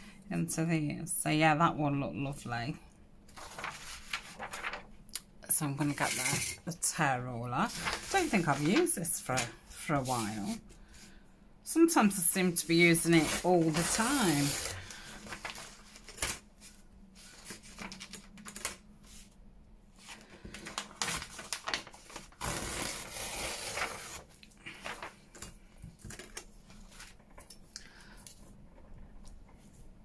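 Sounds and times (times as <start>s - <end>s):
paper rustling: 3.3s - 5.0s, 7.6s - 11.1s, 12.8s - 19.3s, 20.0s - 25.6s.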